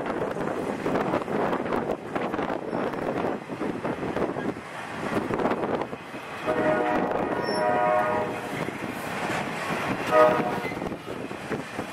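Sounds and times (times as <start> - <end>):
freight train rumbling: 0.0 - 11.9
wind on microphone: 0.0 - 11.9
locomotive air horn chord: 6.4 - 8.6, 10.1 - 10.9.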